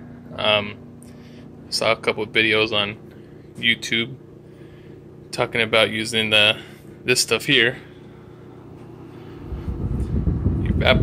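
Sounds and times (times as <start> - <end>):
faint steady hum: 0.0 - 11.0
low rumble: 9.4 - 11.0.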